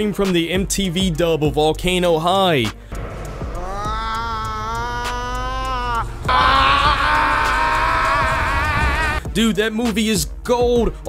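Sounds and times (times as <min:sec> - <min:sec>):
man screaming: 0:03.6 - 0:09.2.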